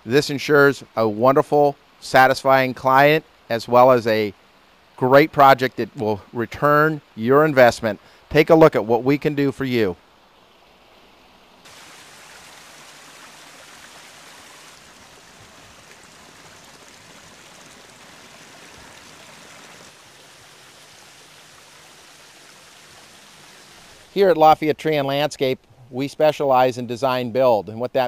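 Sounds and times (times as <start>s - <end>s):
water splashing over rocks: 11.6s - 24.2s.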